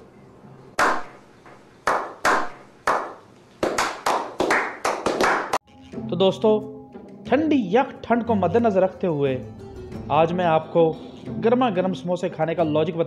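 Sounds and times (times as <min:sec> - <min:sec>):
slow hand clap quickening: 0:01.9 - 0:05.6.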